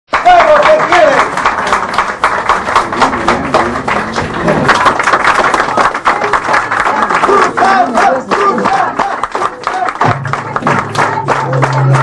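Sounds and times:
crowd applauding: 0.1 - 12.0.

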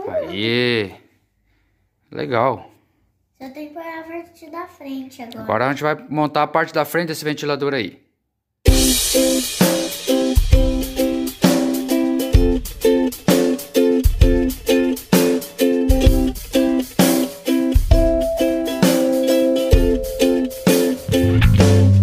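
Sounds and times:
drum beat: 8.7 - 22.0
upbeat plucked strings music: 8.7 - 22.0.

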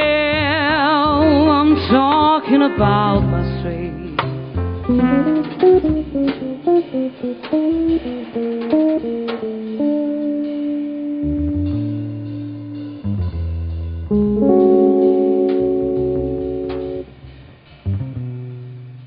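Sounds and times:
light drum and cymbal hits: 0.0 - 19.0
upright bass notes: 0.0 - 19.0
electric guitar playing: 2.3 - 19.0.

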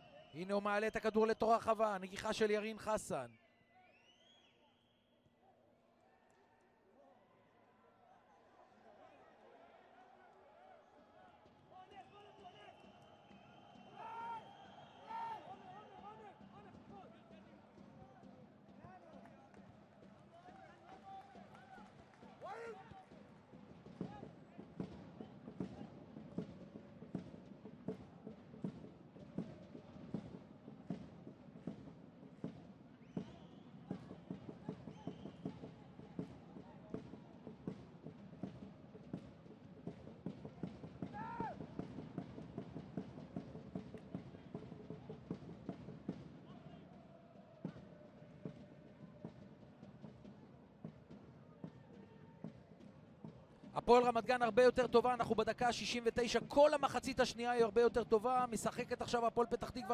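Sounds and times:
crowd rhythmic beat: 12.9 - 59.9.

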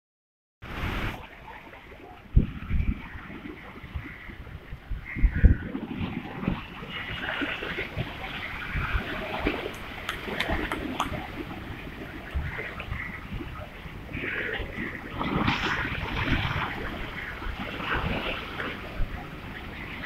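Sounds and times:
sea water splashing against wall: 5.7 - 20.0.

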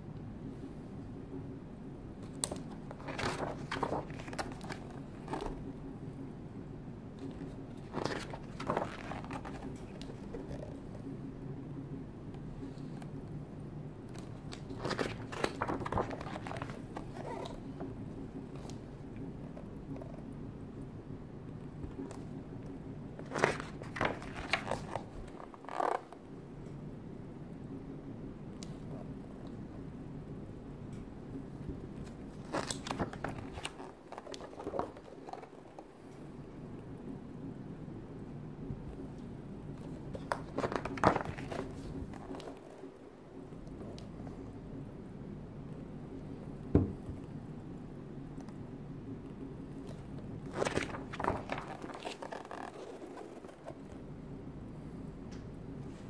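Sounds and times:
steady low hum: 0.0 - 56.0
book pages turning: 2.2 - 5.7, 7.2 - 11.0, 14.1 - 18.9, 23.2 - 26.2, 32.0 - 35.9, 39.8 - 42.9, 49.7 - 54.0.

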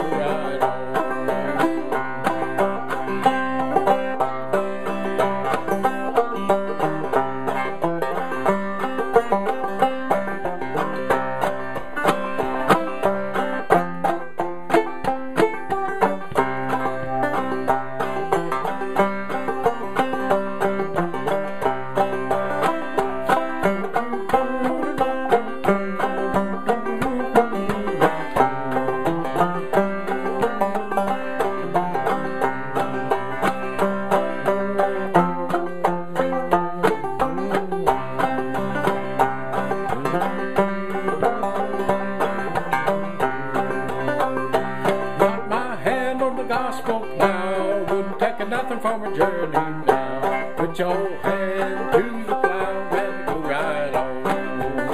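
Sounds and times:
solo banjo playing: 0.0 - 54.9.

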